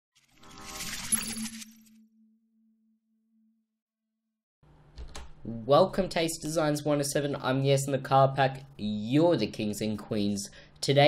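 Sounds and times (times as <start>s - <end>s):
low tone: 1.1s - 4.0s.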